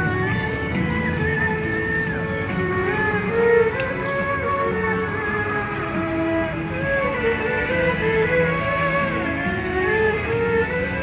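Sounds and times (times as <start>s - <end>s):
erhu playing slow melody: 0.0s - 11.0s.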